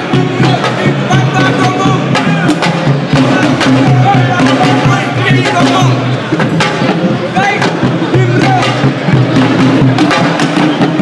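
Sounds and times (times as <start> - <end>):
voices chanting: 0.0 - 6.2
hand drums beating: 0.0 - 11.0.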